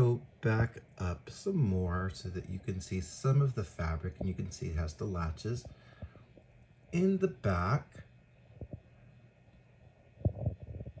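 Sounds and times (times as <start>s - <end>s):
faint steady hum: 0.0s - 11.0s
soft low handling thumps: 4.1s - 4.9s, 10.2s - 11.0s.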